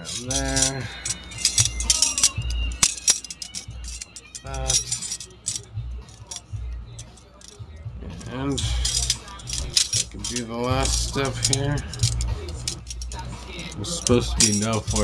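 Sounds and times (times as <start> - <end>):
metal puzzle pieces clinking: 0.0 - 7.6, 8.2 - 15.0.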